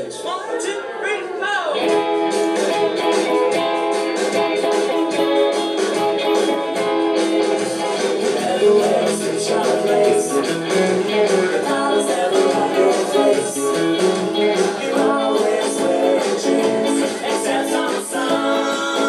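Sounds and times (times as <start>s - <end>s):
electric guitar strumming: 1.8s - 19.0s.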